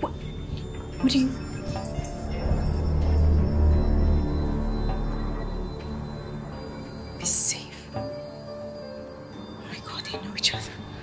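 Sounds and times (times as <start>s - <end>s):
tense film score music: 0.0s - 11.0s.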